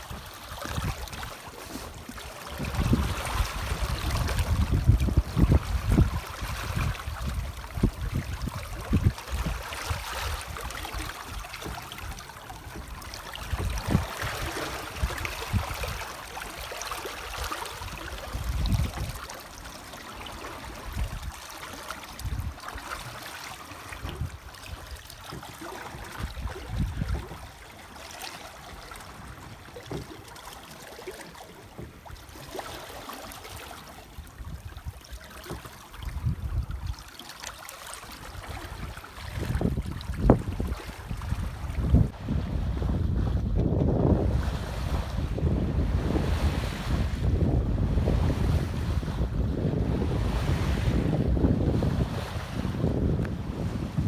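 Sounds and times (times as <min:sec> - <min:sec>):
wind buffeting microphone: 0:00.0 - 0:19.3, 0:20.3 - 0:21.4, 0:22.1 - 0:23.2, 0:23.9 - 0:27.6, 0:35.9 - 0:37.0, 0:38.2 - 0:54.0
water rushing past boat: 0:00.0 - 0:54.0.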